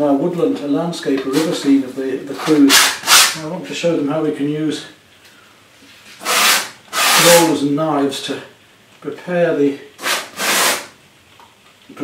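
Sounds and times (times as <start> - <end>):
painting knife scraping canvas: 6.1 - 7.5, 10.0 - 10.9.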